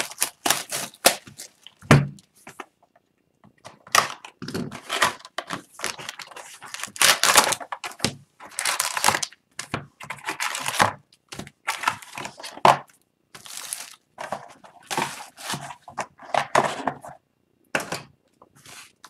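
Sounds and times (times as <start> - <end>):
foil wrappers crinkling: 0.0 - 1.8, 4.1 - 9.4, 13.4 - 16.0
cardboard rustling and scraping: 13.4 - 17.2, 18.5 - 19.0.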